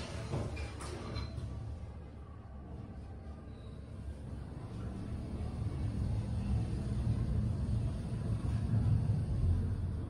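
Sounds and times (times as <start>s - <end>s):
elevator travelling low rumble: 3.9s - 10.0s.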